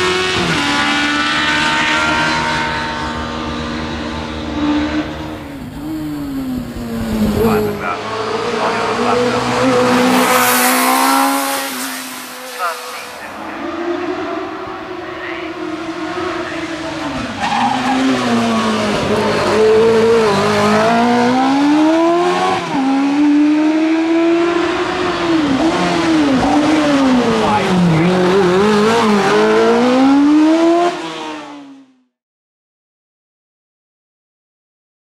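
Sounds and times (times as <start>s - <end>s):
racing car engine revving: 0.0s - 31.8s.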